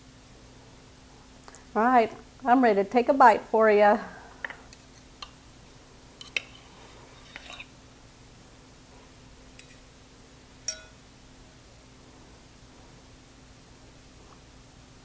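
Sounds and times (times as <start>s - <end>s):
cutlery clinking on a plate: 10.6s - 11.0s.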